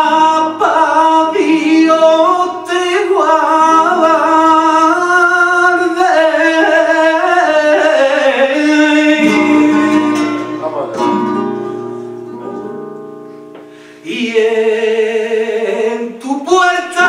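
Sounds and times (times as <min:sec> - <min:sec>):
man singing flamenco: 0:00.0 - 0:11.4, 0:14.0 - 0:17.0
flamenco guitar plucking and strumming: 0:00.0 - 0:14.0.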